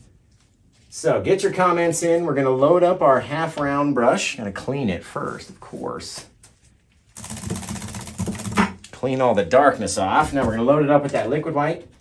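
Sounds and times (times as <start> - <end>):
paint brush rattling in bucket: 7.2 - 8.8.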